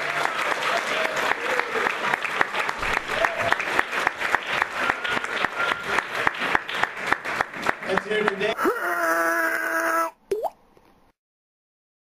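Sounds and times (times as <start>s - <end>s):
water plop: 10.3s - 10.6s.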